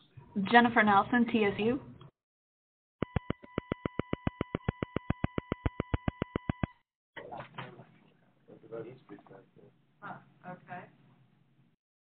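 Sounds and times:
electronic tone: 3.0s - 6.8s
rapid even clicking: 3.0s - 6.8s.

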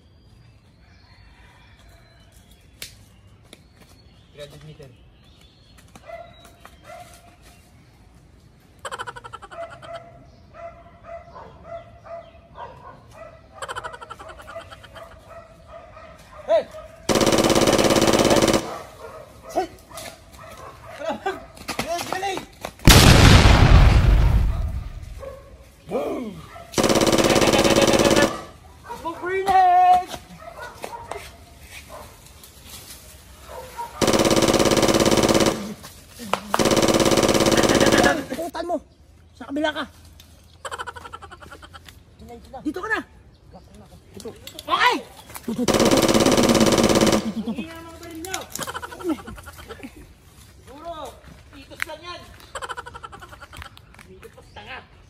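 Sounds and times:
automatic gunfire burst: 17.1s - 18.9s, 22.9s - 25.1s, 26.8s - 28.5s, 34.0s - 35.8s, 36.6s - 38.5s, 45.7s - 47.6s.

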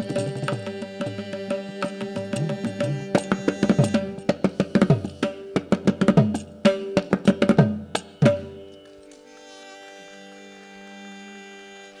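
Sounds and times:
electronic tanpura drone: 0.0s - 12.0s.

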